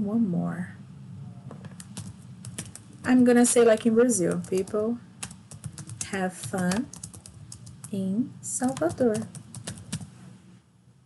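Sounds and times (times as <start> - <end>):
computer keyboard typing: 1.6 - 8.0, 8.6 - 10.1.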